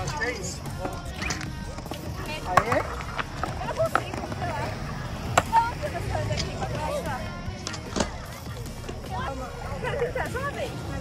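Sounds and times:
background voices: 0.0 - 11.0
music: 0.0 - 11.0
skateboard wheels rolling: 0.0 - 11.0
skateboard clacks: 0.8 - 6.7.

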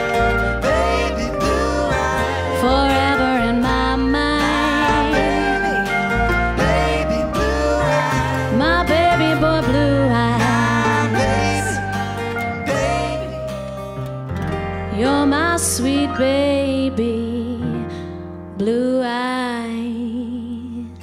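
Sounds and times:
gliding melody line: 0.0 - 14.1
keyboard: 0.0 - 18.8
acoustic guitar: 0.0 - 21.0
bass: 0.0 - 21.0.

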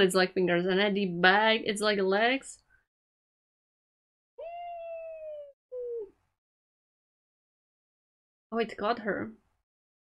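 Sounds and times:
woman humming mm: 4.4 - 6.1.

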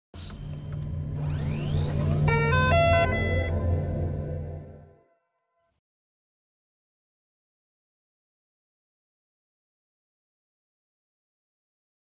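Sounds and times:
thin high tone: 0.2 - 5.7
rising sweeps: 0.9 - 5.1.

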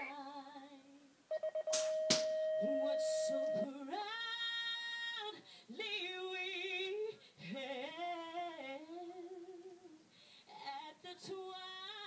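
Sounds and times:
short beeps: 1.3 - 3.7
steady high tone: 1.3 - 3.9
woman singing an anthem: 2.6 - 12.0.

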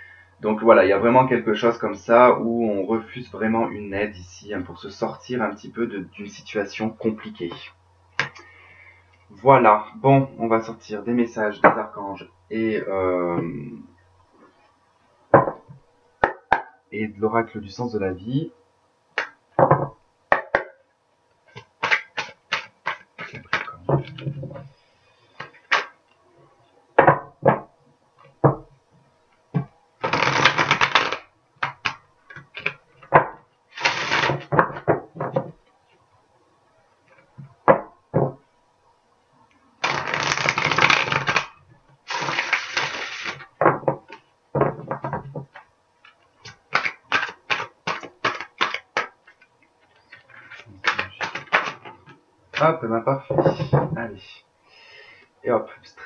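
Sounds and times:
cards being shuffled: 21.5 - 24.6, 25.3 - 26.0, 30.0 - 34.8, 39.8 - 41.5, 42.1 - 43.5, 45.5 - 52.6
card riffling: 30.0 - 32.8, 39.8 - 41.5, 46.4 - 49.4.

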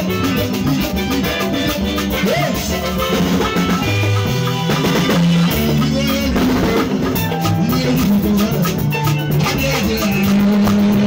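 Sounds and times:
drum kit beat: 0.0 - 11.0
live band playing: 0.0 - 11.0.

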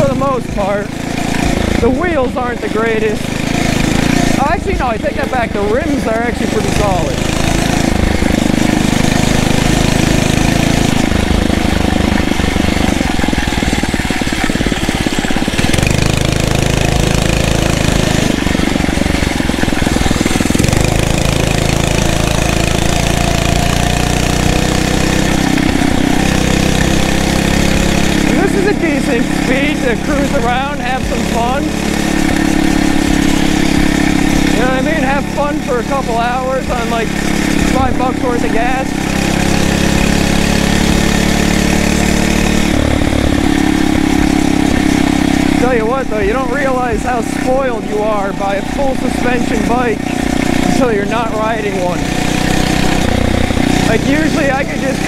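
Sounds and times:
motorized bicycle engine running: 0.0 - 55.0.

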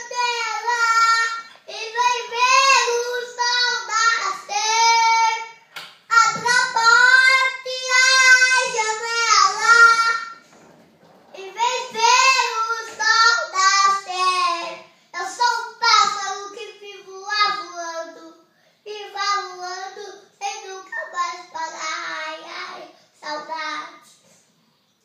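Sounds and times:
boy singing unaccompanied: 0.0 - 10.4, 11.3 - 24.2
boy breathing: 18.5 - 18.9.

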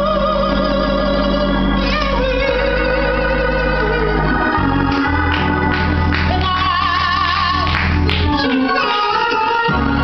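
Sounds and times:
organ playing: 0.0 - 10.0
woman singing gospel solo: 0.0 - 10.0.

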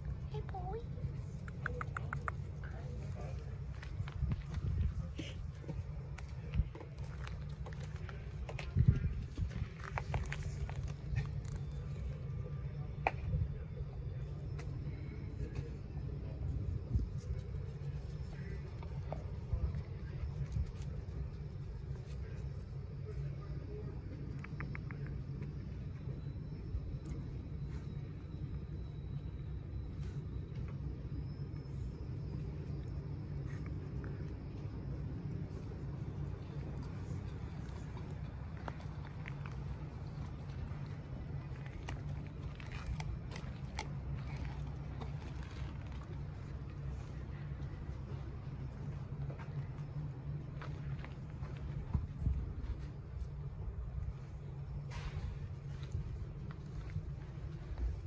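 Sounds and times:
low steady rumble: 0.0 - 58.0.

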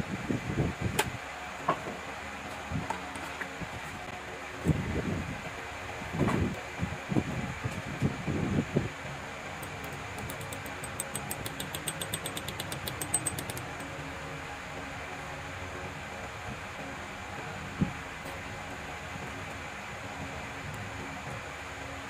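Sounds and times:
mechanical fan hum: 0.0 - 22.0
fast faint ticks: 9.6 - 14.0.

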